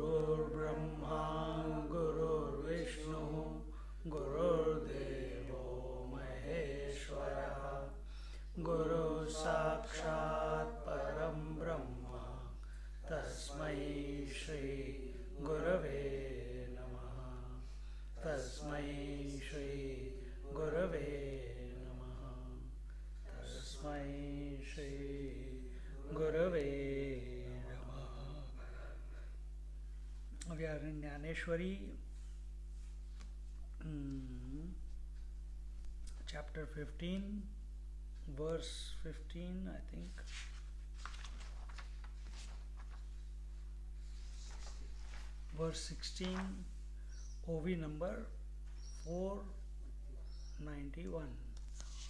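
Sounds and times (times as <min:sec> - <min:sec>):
man chanting a prayer: 0:00.0 - 0:28.9, 0:30.4 - 0:32.0, 0:36.1 - 0:37.5, 0:38.2 - 0:40.4, 0:44.4 - 0:48.4, 0:49.0 - 0:49.7, 0:50.4 - 0:52.0
steady low hum: 0:00.0 - 0:52.0.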